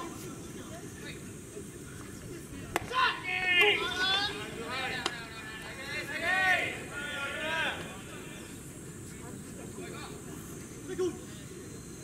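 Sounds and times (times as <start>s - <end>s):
men shouting: 2.9s - 8.5s.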